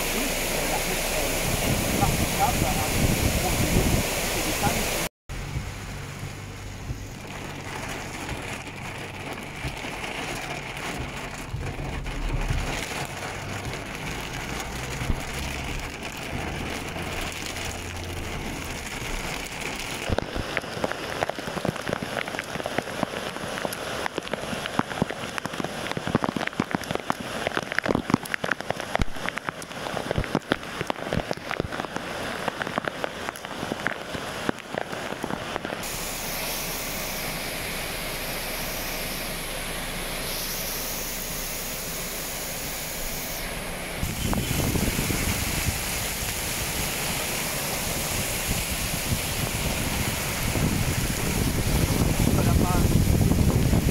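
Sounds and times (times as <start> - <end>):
heavy rain hissing: 0.0 - 53.9
rain rushing over floodwater: 0.0 - 53.9
low vehicle rumble: 5.3 - 20.2
raindrops ticking on microphone: 5.5 - 53.9.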